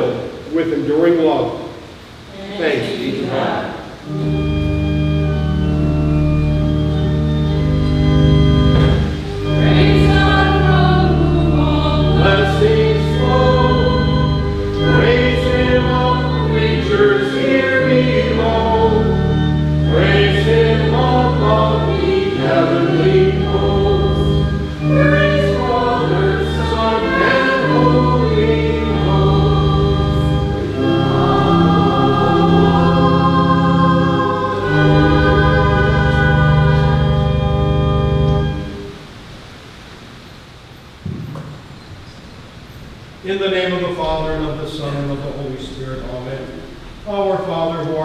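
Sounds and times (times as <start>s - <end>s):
organ chords: 0.0s - 40.0s, 40.9s - 48.0s
voices singing a hymn: 2.2s - 39.0s, 43.3s - 48.0s.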